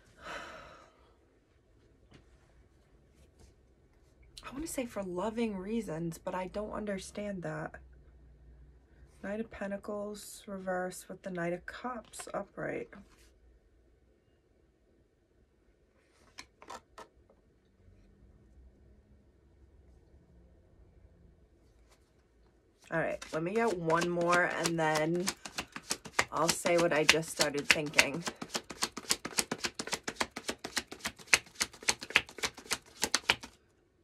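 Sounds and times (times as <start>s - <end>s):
card edges rustling: 23.1s - 33.6s
cards snapping: 23.2s - 33.6s.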